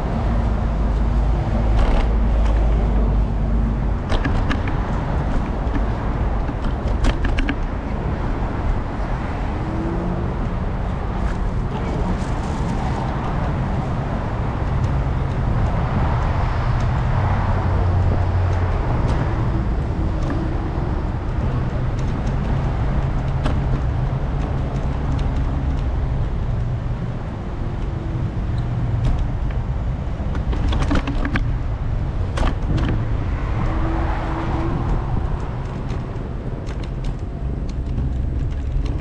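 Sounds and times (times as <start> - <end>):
cars passing on road: 0.0 - 39.0.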